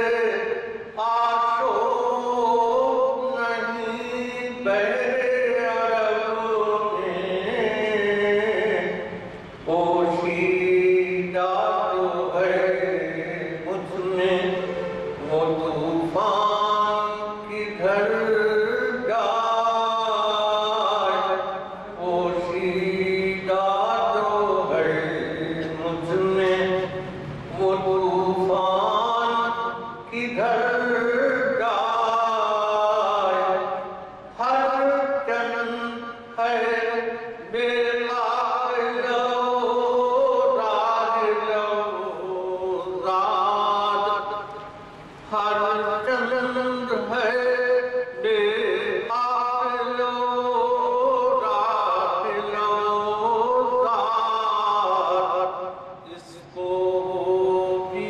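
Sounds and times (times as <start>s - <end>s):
man chanting verse: 0.0s - 58.0s.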